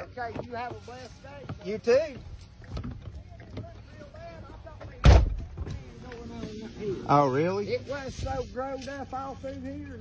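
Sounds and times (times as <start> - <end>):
distant voices talking: 0.0 - 10.0.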